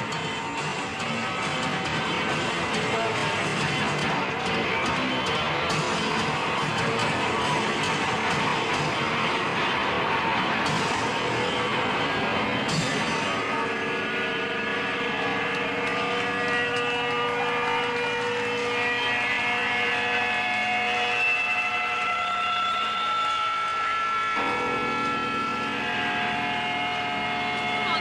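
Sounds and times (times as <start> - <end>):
sustained drone of held pitches: 24.4 - 28.0.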